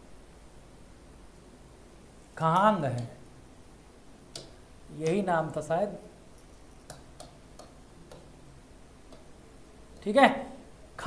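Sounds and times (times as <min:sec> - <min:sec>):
pen tapping on writing board: 0:06.9 - 0:08.3.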